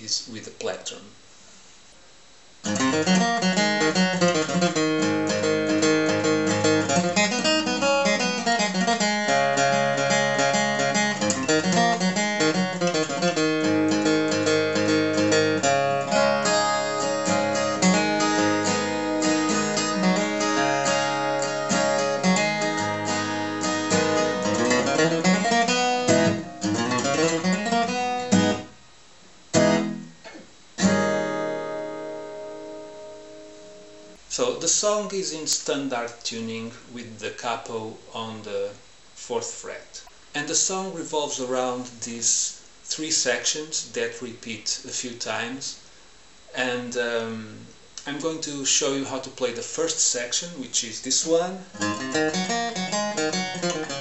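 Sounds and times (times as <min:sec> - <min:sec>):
acoustic guitar chords: 0:02.6 - 0:28.9, 0:29.5 - 0:38.3, 0:46.5 - 0:54.0
acoustic guitar scale runs: 0:51.8 - 0:54.0.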